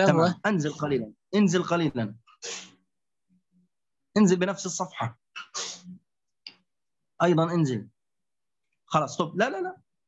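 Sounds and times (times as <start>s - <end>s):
man speaking: 0.0s - 2.3s
breath or sniff close to microphone: 2.4s - 2.8s.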